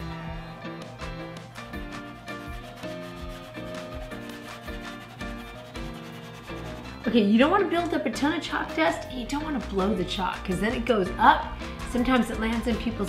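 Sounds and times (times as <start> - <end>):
background music: 0.0 - 13.0
pastel rubbing on paper: 0.8 - 7.7.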